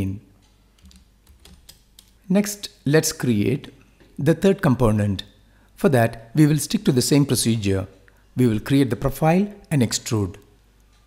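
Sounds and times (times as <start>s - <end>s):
keyboard keystrokes: 0.8s - 2.2s.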